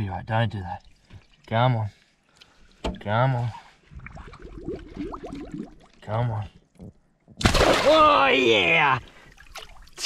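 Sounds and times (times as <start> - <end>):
water gurgling and bubbling in a net: 3.9 - 6.0.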